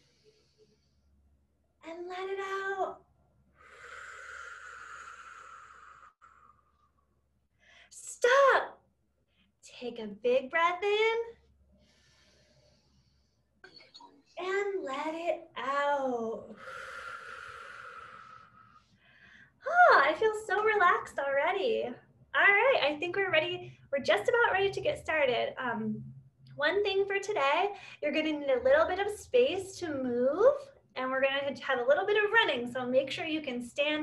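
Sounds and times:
woman breathing out: 3.6 - 7.9, 16.6 - 19.6.

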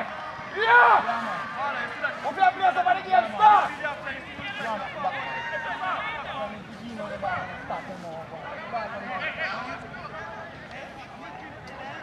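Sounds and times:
people shouting on football pitch: 0.0 - 12.0.

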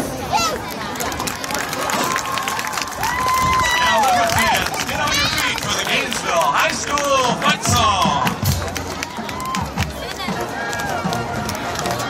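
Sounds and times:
crowd voices and shouts: 0.0 - 12.0.

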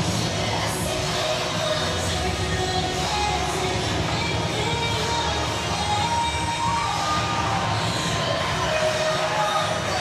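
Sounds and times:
crowd cheering and shouting: 4.5 - 10.0.

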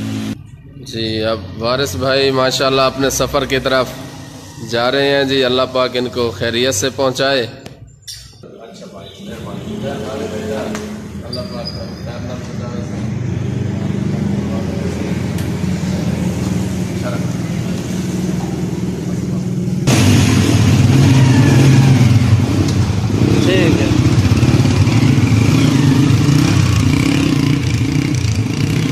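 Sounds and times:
motorcycle engine revving: 0.0 - 0.5, 1.7 - 6.9, 9.5 - 28.9.

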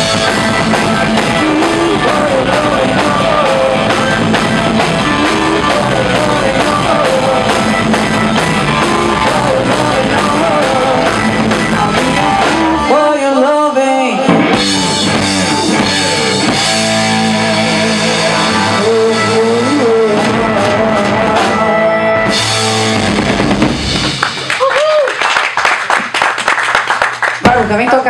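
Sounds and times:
hard rock band playing live: 0.0 - 13.1, 14.2 - 24.5
person singing: 0.0 - 22.3.

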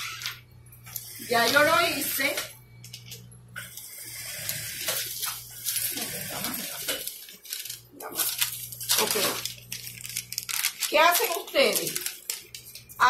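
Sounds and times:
low steady hum: 0.0 - 13.0.

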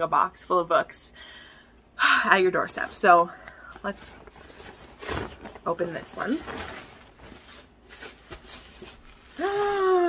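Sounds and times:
wrapping paper rustling: 3.7 - 10.0.

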